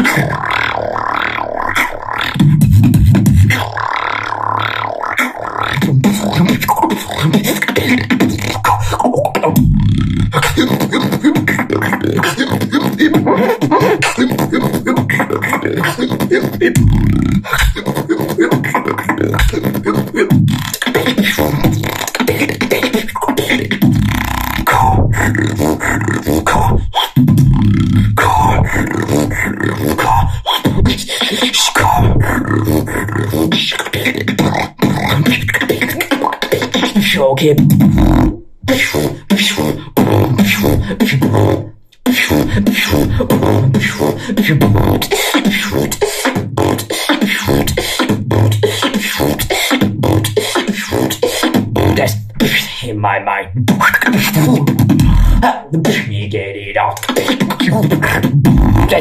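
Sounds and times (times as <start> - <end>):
beatboxing: 0.0 - 59.0.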